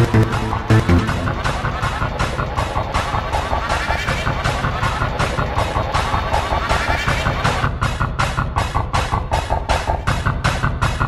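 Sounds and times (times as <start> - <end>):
distorted electronic music: 0.0 - 11.0.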